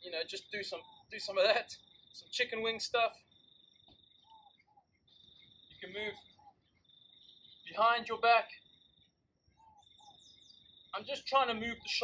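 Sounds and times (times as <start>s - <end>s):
cricket trilling: 0.1s - 12.0s.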